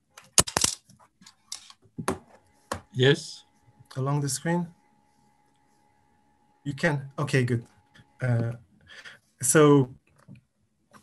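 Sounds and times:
sharp clicks and clatter: 0.2 - 1.8.

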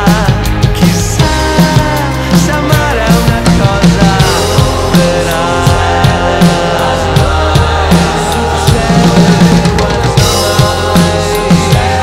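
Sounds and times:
drum kit playing: 0.0 - 12.0
recorded pop-rock song: 0.0 - 12.0.

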